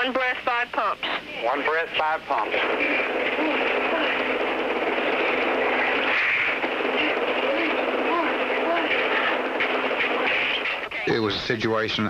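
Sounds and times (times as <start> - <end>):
faint indistinct voices: 0.0 - 11.4.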